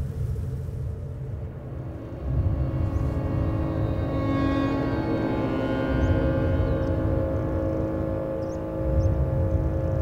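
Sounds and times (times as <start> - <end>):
low rumbling drone: 0.0 - 10.0
sustained musical tones: 1.2 - 10.0.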